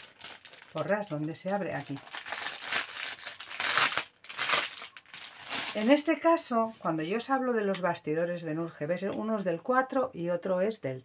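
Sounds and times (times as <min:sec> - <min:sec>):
plastic bag crinkling: 0:00.0 - 0:06.3.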